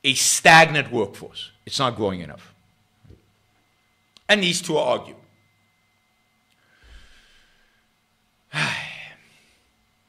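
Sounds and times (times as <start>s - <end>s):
man sighing: 8.5s - 9.2s.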